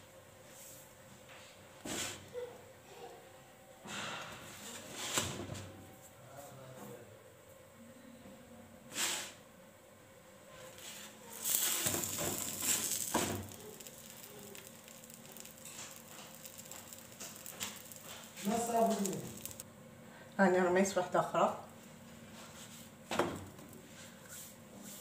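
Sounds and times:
bread scraping on griddle: 0:10.8 - 0:19.6.

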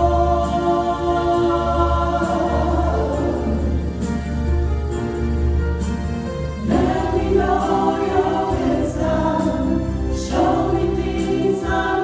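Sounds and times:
group singing a hymn: 0:00.0 - 0:04.0, 0:06.6 - 0:12.0.

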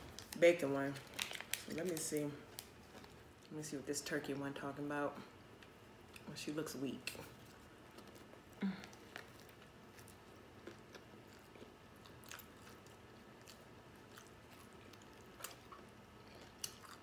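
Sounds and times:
faint chewing: 0:07.1 - 0:17.0.

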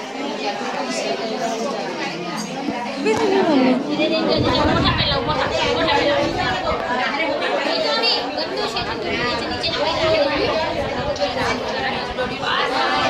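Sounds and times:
women chattering: 0:00.0 - 0:13.0.

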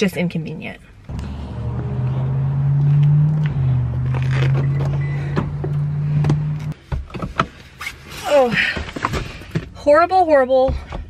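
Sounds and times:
car engine running: 0:01.1 - 0:06.8.

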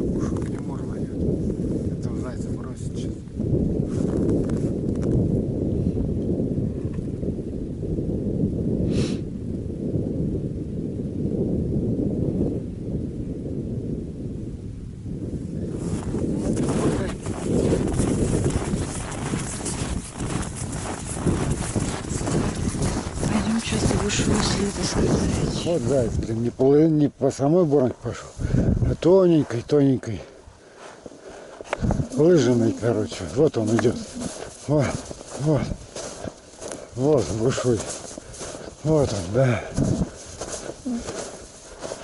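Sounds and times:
wind buffeting microphone: 0:00.0 - 0:42.0
footsteps crunching in snow: 0:15.7 - 0:26.7, 0:28.1 - 0:42.0.

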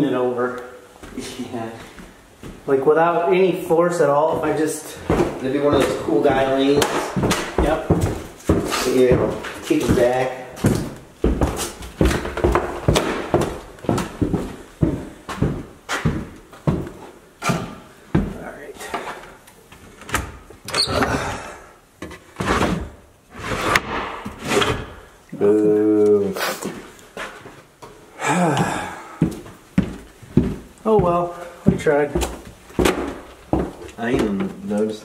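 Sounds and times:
footsteps on bare floors: 0:00.0 - 0:20.2, 0:26.6 - 0:35.0.

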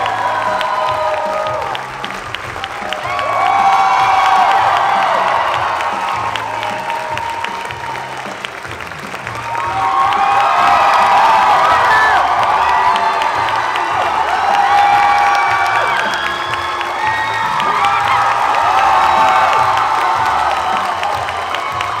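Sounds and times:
audience clapping and cheering: 0:00.0 - 0:22.0
upbeat music with bass line: 0:00.0 - 0:22.0.

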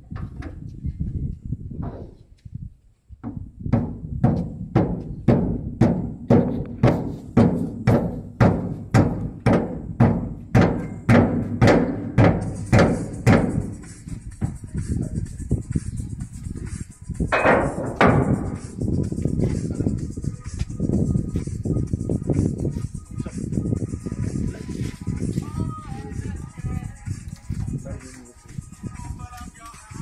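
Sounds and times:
hammer striking steel handle: 0:06.4 - 0:13.6, 0:17.3 - 0:18.7.

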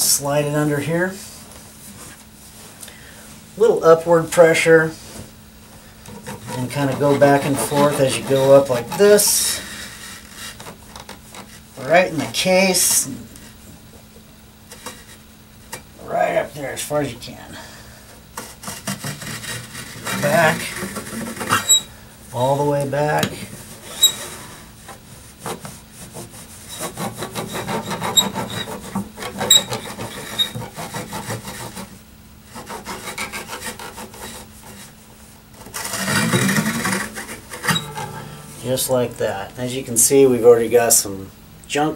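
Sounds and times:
rag rubbing guitar strings: 0:06.1 - 0:13.5, 0:18.4 - 0:40.1.

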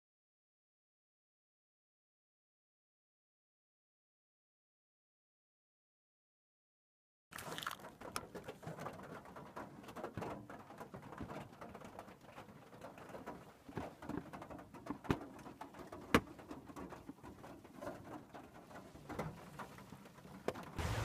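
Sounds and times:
rain pattering on roof: 0:07.3 - 0:21.0.

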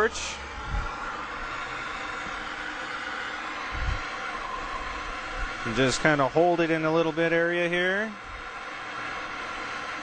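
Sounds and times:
blowtorch hissing: 0:00.0 - 0:10.0.

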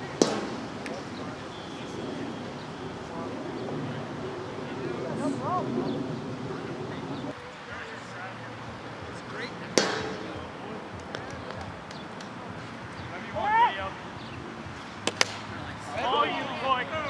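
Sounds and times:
wiffle ball struck with crack: 0:00.0 - 0:01.1, 0:09.7 - 0:12.4, 0:15.0 - 0:15.7
man shouting: 0:13.3 - 0:13.9.

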